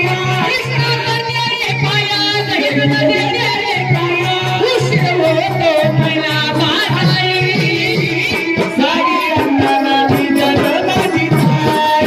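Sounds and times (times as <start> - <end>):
woman singing folk song: 0.0 - 12.0.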